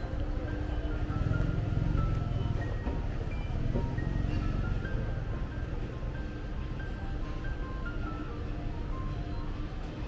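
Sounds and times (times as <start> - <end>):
vehicle engine low rumble: 0.0 - 6.5.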